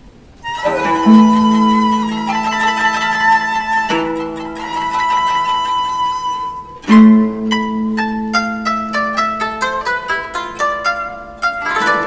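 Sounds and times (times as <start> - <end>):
long held instrumental tones: 0.4 - 12.0
plucked string notes: 0.4 - 12.0.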